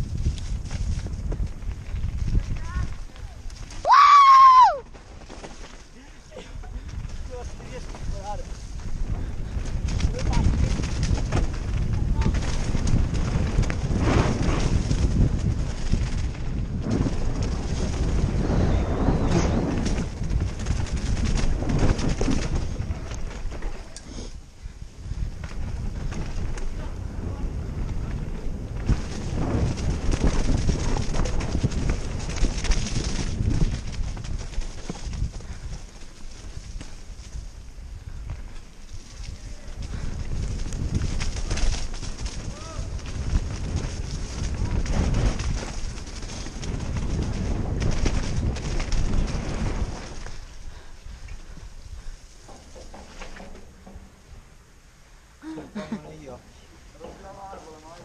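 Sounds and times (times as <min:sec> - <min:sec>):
wind buffeting camera: 0:00.0 - 0:55.5
bike rattling over rough trail: 0:00.0 - 0:58.0.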